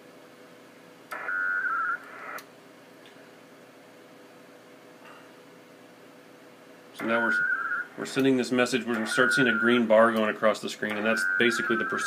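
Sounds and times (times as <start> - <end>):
faint steady hum: 0.0 - 12.0
radio hiss: 7.0 - 10.0, 10.8 - 12.0
warbling digital data tones: 9.0 - 9.9, 11.0 - 12.0.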